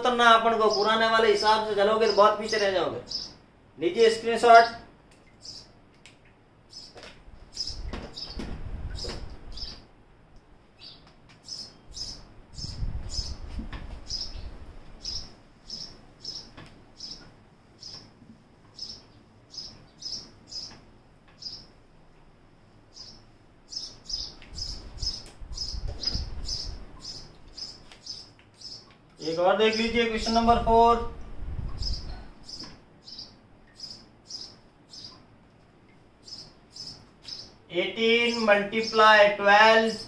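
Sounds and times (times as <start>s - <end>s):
small bird chirping: 3.1s - 3.4s, 4.6s - 5.8s, 6.7s - 9.9s, 10.8s - 18.1s, 18.7s - 20.8s, 21.4s - 21.8s, 22.9s - 29.0s, 31.7s - 35.2s, 36.2s - 37.6s.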